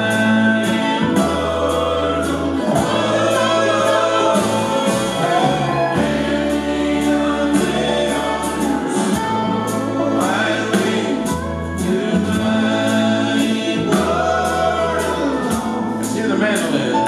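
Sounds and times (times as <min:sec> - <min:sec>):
banjo: 0:00.0 - 0:17.0
bluegrass band playing: 0:00.0 - 0:17.0
voices singing in harmony: 0:00.0 - 0:17.0.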